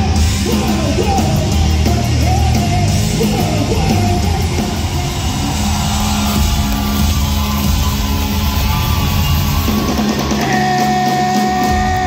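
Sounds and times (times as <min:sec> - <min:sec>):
punk rock band playing live: 0:00.0 - 0:12.0.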